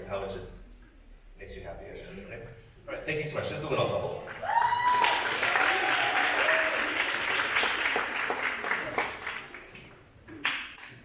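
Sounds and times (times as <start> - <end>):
audience applause: 4.4 - 11.0.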